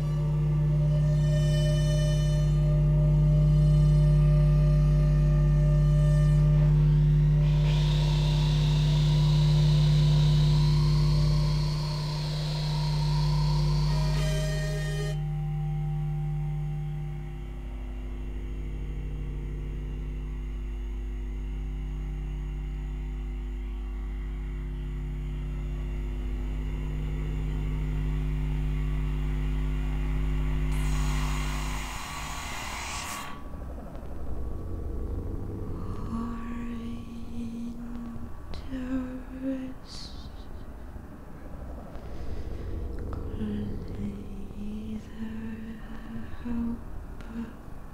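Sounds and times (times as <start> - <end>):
electronic drone music: 0.0 - 21.0, 25.3 - 38.5, 40.8 - 47.1.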